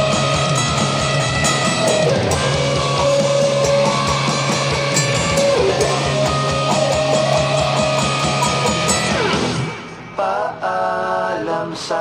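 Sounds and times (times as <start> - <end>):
steady beat: 0.0 - 9.8
electric guitar solo: 0.0 - 10.1.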